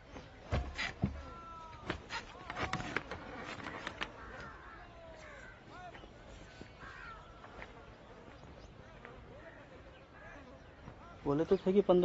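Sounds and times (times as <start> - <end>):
faint bird calls: 3.8 - 11.3.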